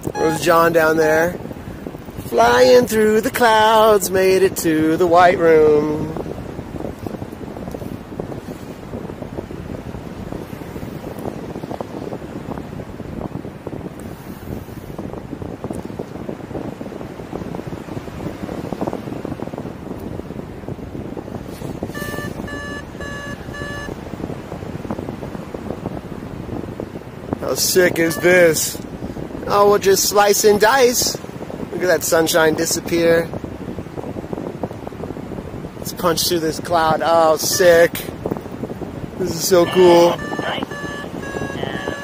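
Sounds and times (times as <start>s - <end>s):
short electronic beeps: 0.0s - 0.6s, 21.9s - 24.0s, 27.9s - 28.6s, 37.4s - 38.0s, 39.3s - 42.0s
wind rushing over microphone: 0.0s - 42.0s.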